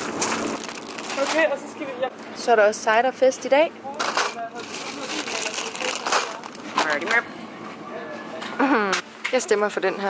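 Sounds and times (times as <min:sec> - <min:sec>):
bags and groceries crinkling: 0:00.0 - 0:01.7, 0:04.0 - 0:07.3.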